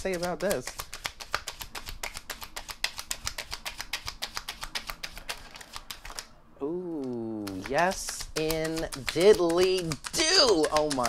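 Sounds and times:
cards being shuffled: 0.0s - 6.3s, 6.9s - 11.0s.

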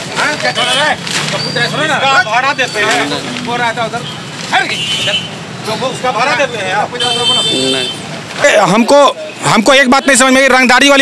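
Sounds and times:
street background noise: 0.0s - 11.0s
man speaking: 0.1s - 11.0s.

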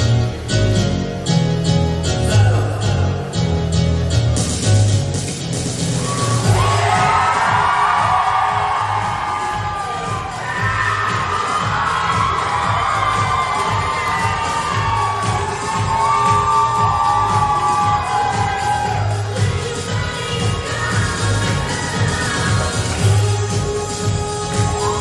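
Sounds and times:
pop music with steady beat: 0.0s - 25.0s
audience cheering and shouting: 5.9s - 23.2s.

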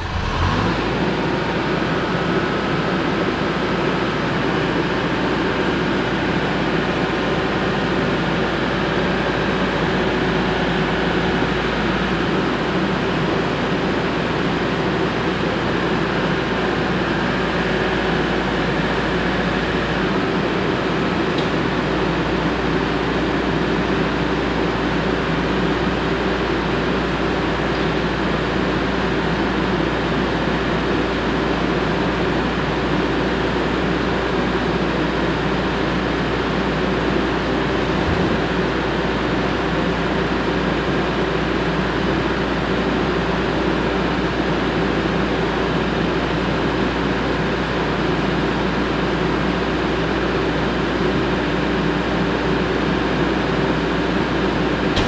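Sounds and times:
engine droning: 0.0s - 47.0s, 48.1s - 55.0s.

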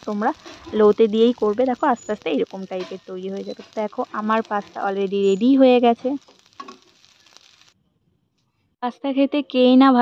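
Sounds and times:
pasta sizzling in a pan: 0.0s - 7.8s.

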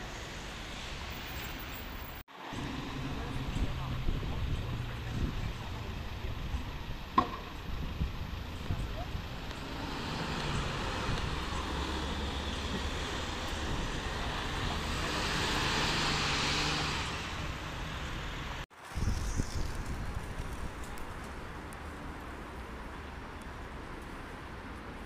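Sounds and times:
traffic noise: 0.0s - 25.0s
tyre and road noise: 0.0s - 25.0s
bus engine hum: 1.2s - 7.1s, 7.8s - 18.7s.

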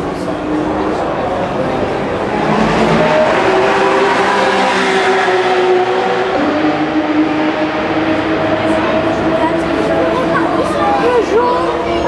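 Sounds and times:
race car engines: 0.0s - 12.0s.

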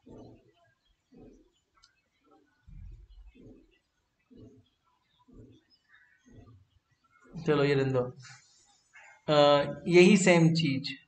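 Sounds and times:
faint low bird calls: 0.0s - 9.9s.

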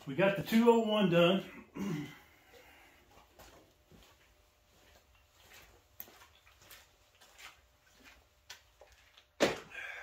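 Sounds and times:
faint footsteps on concrete: 2.4s - 9.4s.

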